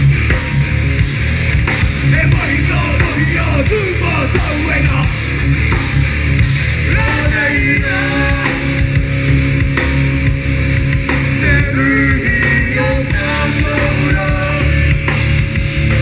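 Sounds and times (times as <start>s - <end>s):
bass: 0.0s - 16.0s
drums: 0.0s - 16.0s
electric guitars: 0.0s - 16.0s
sung vocals: 1.9s - 5.3s, 6.8s - 9.6s, 11.1s - 16.0s.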